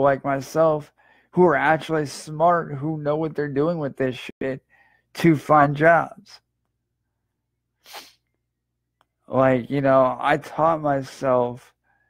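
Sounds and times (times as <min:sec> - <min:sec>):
sharp breath through nose: 0:07.8 - 0:08.3.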